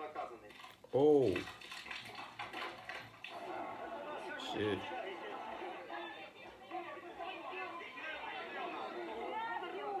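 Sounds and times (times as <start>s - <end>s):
crowd chatter: 3.3s - 10.0s.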